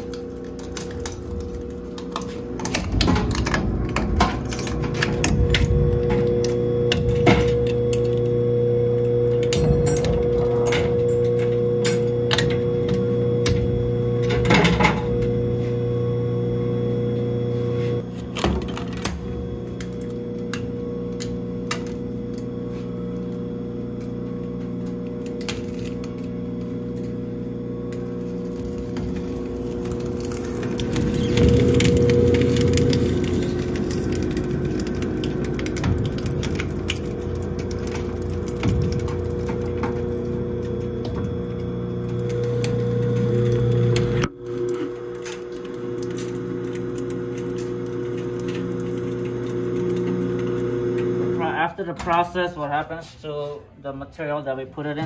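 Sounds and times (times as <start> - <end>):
shredder motor hum: 0.0 - 51.7.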